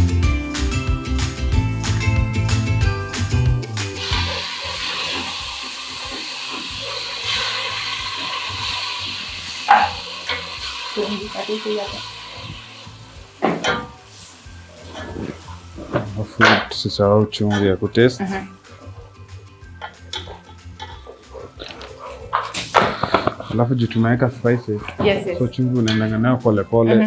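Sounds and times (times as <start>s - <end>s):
food sizzling in a pan: 3.8s - 26.9s.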